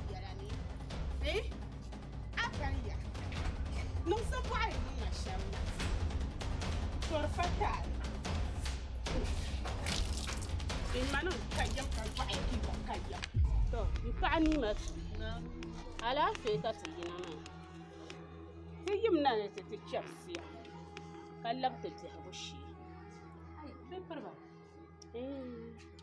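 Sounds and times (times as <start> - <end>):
background music: 0.0 - 26.0
voices speaking: 10.8 - 22.6
steady low hum: 12.7 - 16.7.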